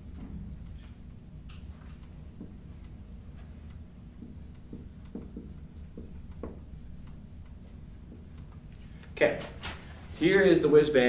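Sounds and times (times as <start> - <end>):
marker writing on a whiteboard: 1.6 - 8.9.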